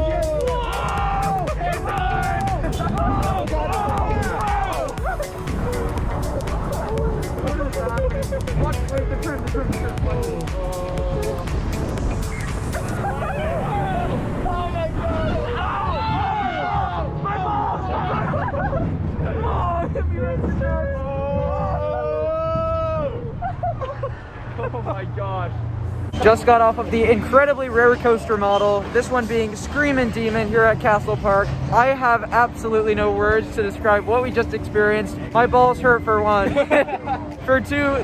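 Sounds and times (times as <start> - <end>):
riders yelping and shouting: 0.0 - 6.0, 12.3 - 23.7
roller coaster cars rumbling: 0.0 - 38.0
wind of the ride: 0.0 - 38.0.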